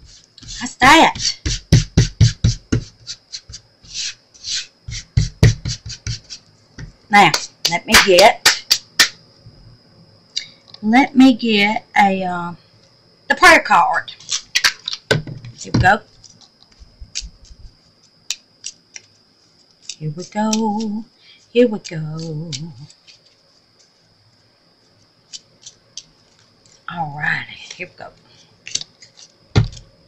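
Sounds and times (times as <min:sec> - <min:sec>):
soft rubbing sounds: 0:15.6 - 0:26.9
cards and plastic box clicking: 0:28.7 - 0:29.9.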